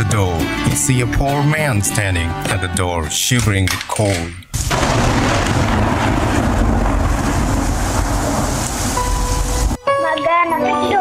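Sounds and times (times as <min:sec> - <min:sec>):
rain: 0:04.6 - 0:09.8.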